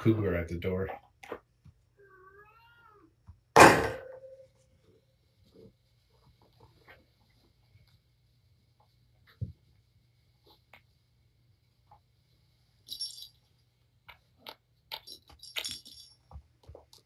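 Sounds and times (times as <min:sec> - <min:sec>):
cat meowing: 0:02.0 - 0:03.1.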